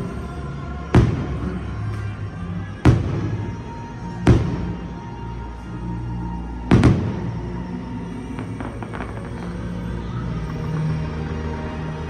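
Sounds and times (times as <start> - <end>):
music with sustained tones: 0.0 - 12.0
faint firework crackles: 6.6 - 12.0.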